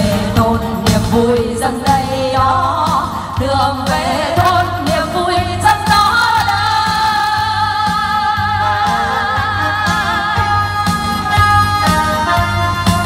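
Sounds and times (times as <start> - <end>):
backing music: 0.0 - 13.0
two women singing duet: 0.0 - 13.0.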